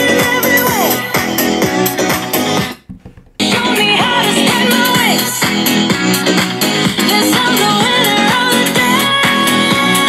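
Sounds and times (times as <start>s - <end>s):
electronic dance music on speakers: 0.0s - 10.0s.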